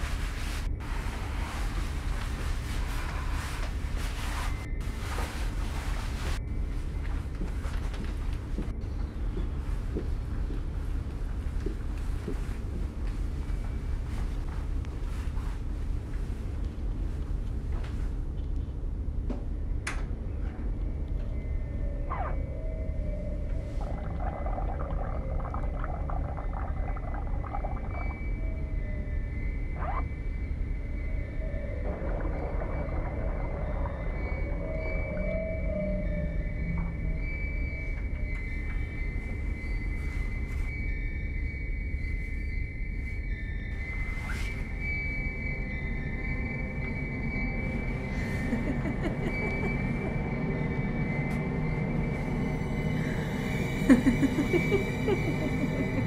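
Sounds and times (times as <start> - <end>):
low drone: 20.2 - 41.8, 43.7 - 56.0
eerie high tones: 21.7 - 56.0.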